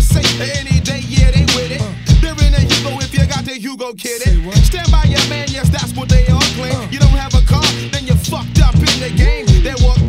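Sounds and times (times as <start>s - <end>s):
hip hop bass and kick beat: 0.0s - 10.0s
vocal line: 8.6s - 10.0s.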